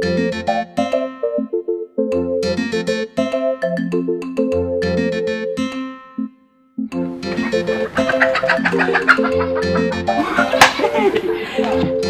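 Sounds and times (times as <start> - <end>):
plucked-string film music: 6.9 - 12.0.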